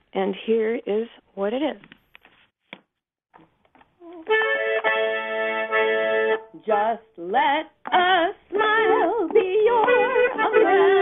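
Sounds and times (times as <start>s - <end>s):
accordion chord held: 4.3s - 6.5s.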